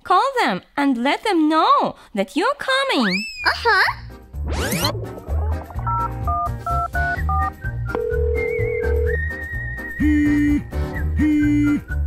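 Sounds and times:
background music with bass beat: 4.9s - 7.8s
telephone ringing tone: 5.8s - 9.2s.

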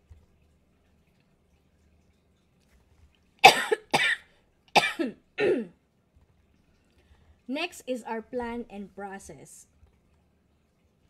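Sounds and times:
person coughing: 3.4s - 5.8s.

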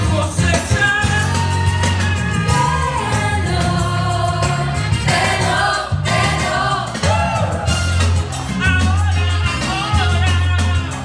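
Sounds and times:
heavy bass line: 0.0s - 11.0s
steady percussion: 0.0s - 11.0s
singers singing: 1.0s - 7.8s.

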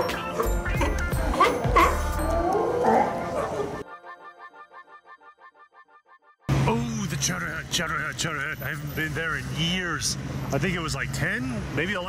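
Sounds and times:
background music with steady beat: 0.0s - 2.7s
sea lions barking: 0.0s - 3.9s.

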